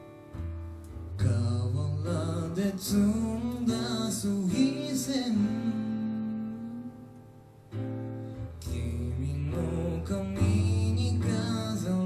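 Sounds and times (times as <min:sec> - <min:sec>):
acoustic guitar: 0:00.0 - 0:12.0
man singing: 0:01.1 - 0:07.2, 0:08.6 - 0:12.0.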